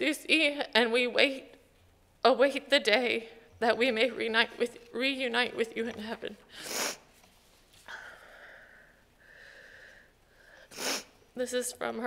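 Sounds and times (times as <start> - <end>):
sharp breath in: 8.0 - 11.2.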